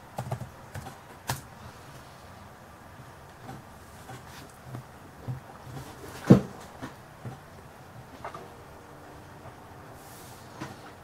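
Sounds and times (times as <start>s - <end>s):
soft hiss: 8.0s - 11.0s.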